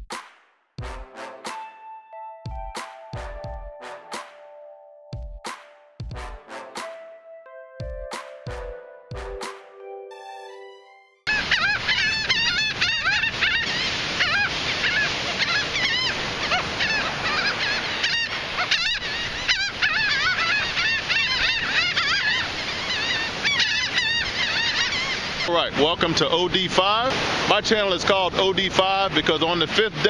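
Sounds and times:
musical tone: 1.2s - 5.2s, 6.3s - 11.3s
gulls calling: 10.3s - 30.0s
surf washing: 11.3s - 30.0s.

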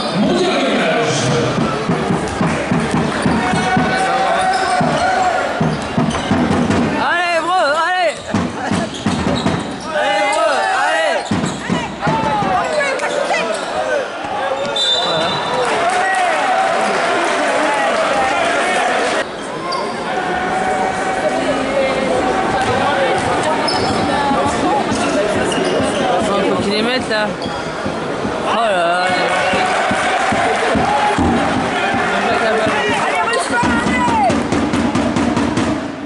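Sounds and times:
crowd voices: 0.0s - 36.0s
shoe squeaks: 4.3s - 6.4s, 8.1s - 10.5s, 11.1s - 11.9s, 12.6s - 15.4s, 23.6s - 24.3s, 25.0s - 26.5s, 27.3s - 28.2s.

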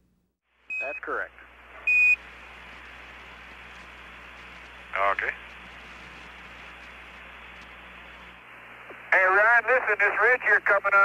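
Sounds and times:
radio channel hiss: 0.5s - 11.0s
single-pitch radio beep: 0.7s - 1.1s, 1.9s - 2.2s.

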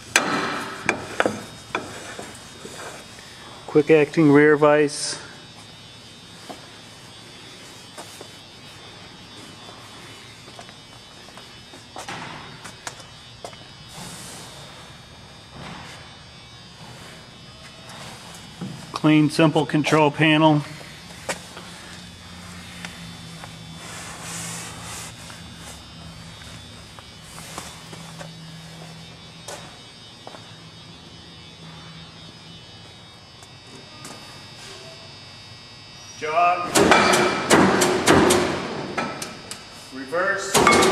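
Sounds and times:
faint buzzing hum: 0.0s - 40.9s.

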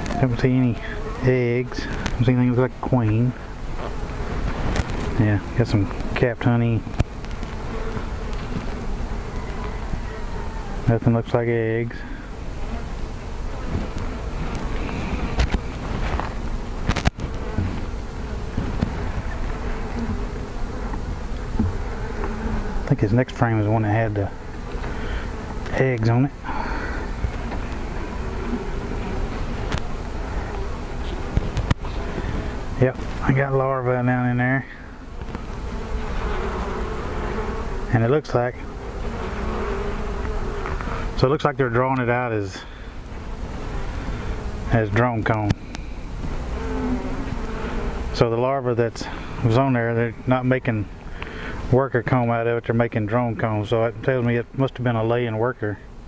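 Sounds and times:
bees buzzing: 0.0s - 52.2s.

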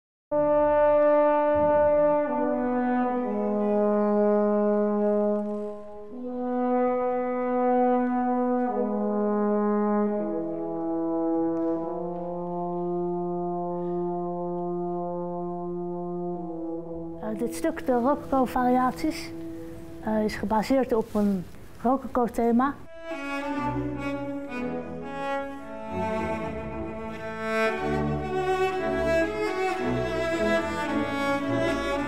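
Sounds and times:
french horn playing: 0.3s - 20.1s, 22.9s - 32.0s.

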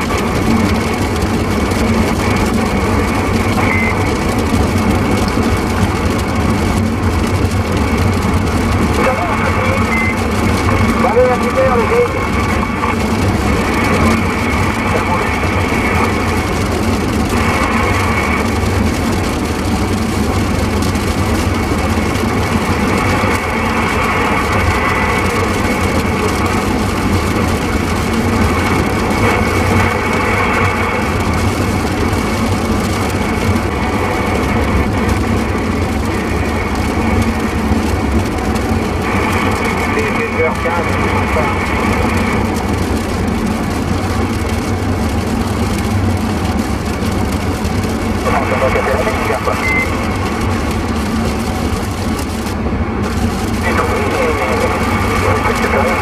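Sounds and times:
garbled radio voices: 0.0s - 5.3s, 8.5s - 18.6s, 38.9s - 42.7s, 48.2s - 51.4s, 53.1s - 56.0s
radio static: 0.0s - 56.0s
vehicle road rumble: 0.0s - 56.0s.

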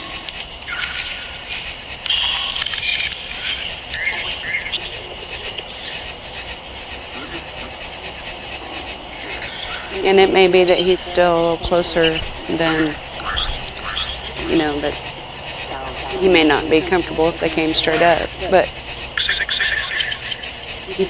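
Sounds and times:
insects trilling: 0.0s - 21.0s.

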